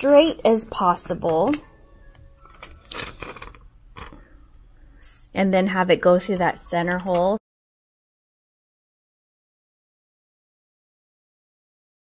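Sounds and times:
plastic tape crinkling: 0:01.5 - 0:04.2.

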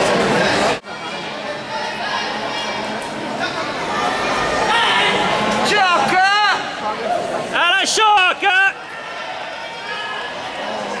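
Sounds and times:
murmur of large hall: 0:00.0 - 0:11.0.

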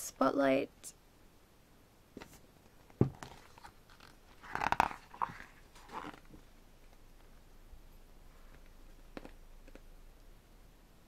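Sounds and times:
paper pages turning: 0:03.1 - 0:06.4.

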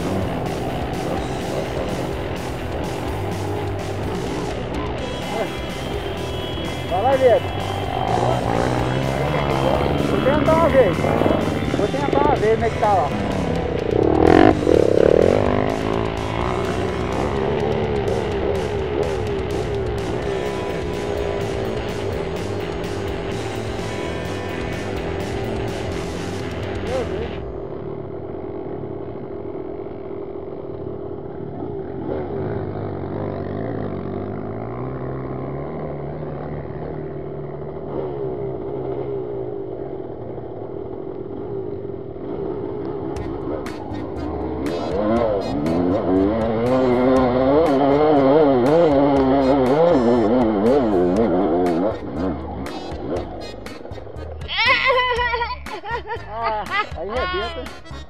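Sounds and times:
dirt bike engine idling and revving: 0:00.0 - 0:58.0.

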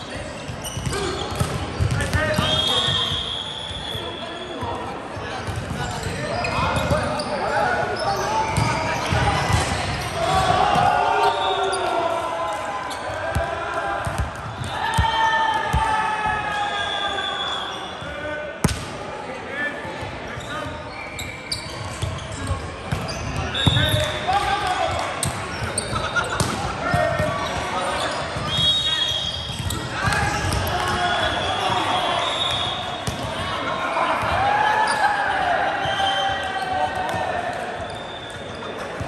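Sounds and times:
players calling and shouting: 0:00.0 - 0:39.0.

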